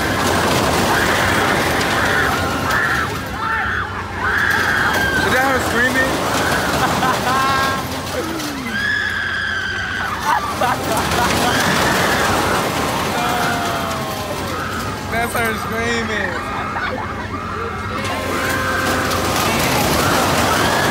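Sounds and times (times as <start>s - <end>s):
riders screaming: 0.0s - 20.9s
din of voices: 10.6s - 20.5s.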